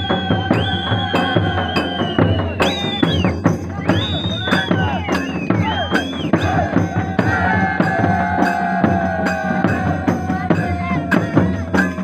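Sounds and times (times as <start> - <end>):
shrill gliding whistles: 0.0 - 6.7
drums beating steady rhythm: 0.0 - 12.0
crowd shouting: 4.2 - 12.0.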